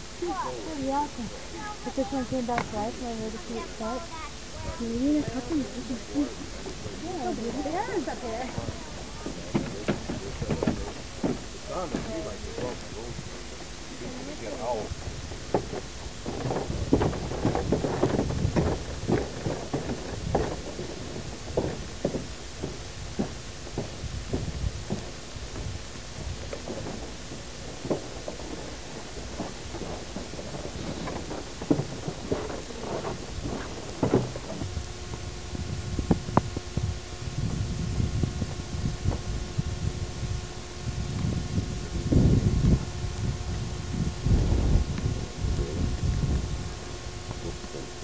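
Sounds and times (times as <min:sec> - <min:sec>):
faint steady hum: 0:00.0 - 0:48.0
wind buffeting microphone: 0:00.0 - 0:48.0.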